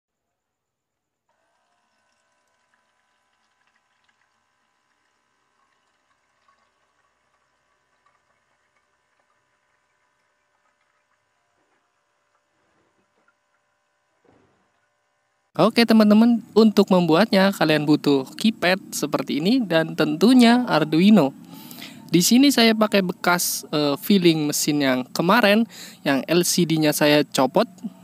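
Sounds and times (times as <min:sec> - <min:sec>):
electric water pump whining: 0:01.3 - 0:28.0.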